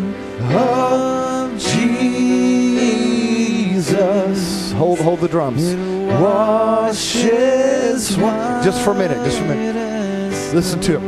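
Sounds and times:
man singing with vibrato: 0.0s - 11.0s.

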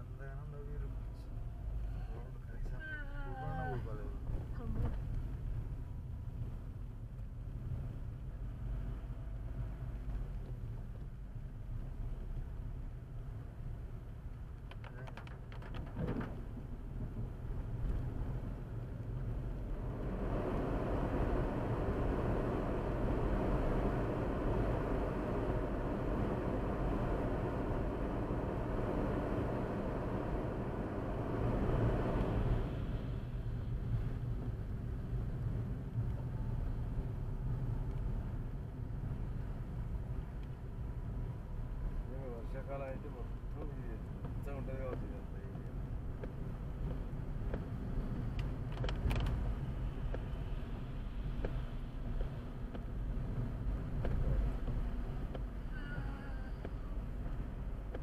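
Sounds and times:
road and engine rumble: 0.0s - 58.0s.

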